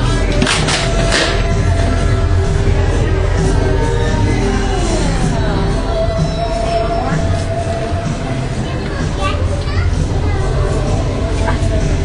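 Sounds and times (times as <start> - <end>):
children chattering: 0.0 - 12.0
low background hum: 0.0 - 12.0.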